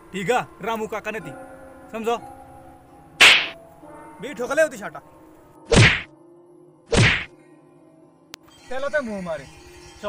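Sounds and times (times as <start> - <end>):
whip cracking: 3.2 - 3.6, 5.7 - 6.1, 7.0 - 7.3.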